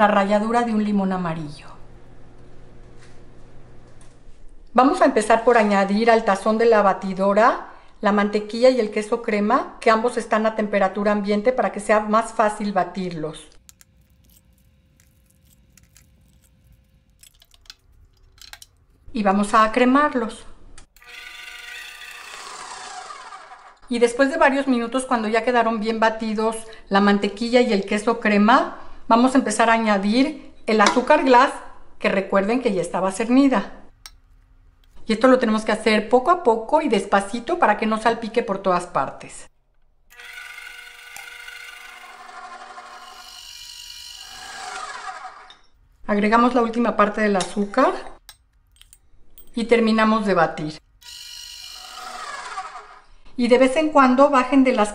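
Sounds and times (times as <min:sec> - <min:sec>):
stand mixer motor whining: 0:21.0 - 0:23.8, 0:40.1 - 0:45.5, 0:51.1 - 0:53.0.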